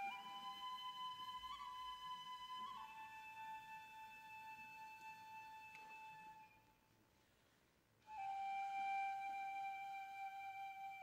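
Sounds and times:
flute holding long note: 0.0 - 6.7, 8.1 - 11.0.

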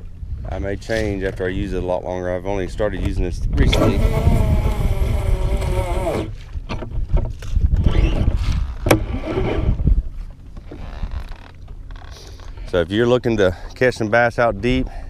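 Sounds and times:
wind buffeting microphone: 0.0 - 11.2.

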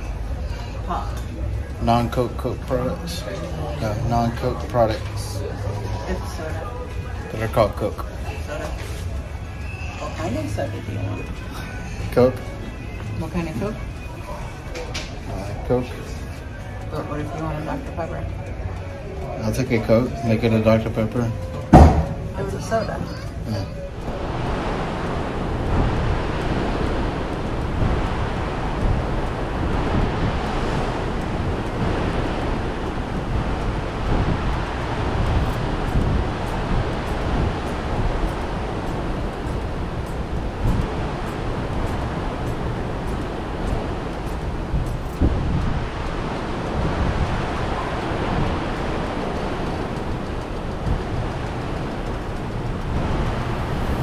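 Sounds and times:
sea water rushing along hull: 0.0 - 54.0
wind buffeting microphone: 0.0 - 54.0.

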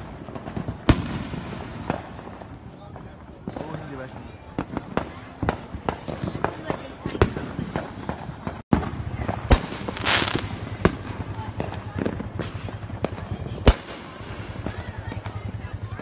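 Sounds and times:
fireworks bangs and pops: 0.0 - 16.0
crackling hiss of bursting stars: 9.6 - 10.6.

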